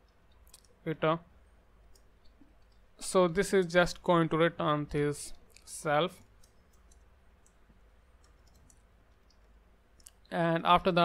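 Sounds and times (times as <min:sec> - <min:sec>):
faint keyboard typing: 0:01.8 - 0:03.0, 0:05.4 - 0:10.3.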